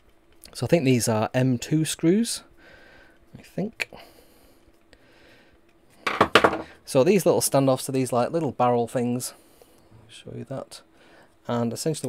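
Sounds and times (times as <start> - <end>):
clatter of small hard parts: 6.0 - 6.8.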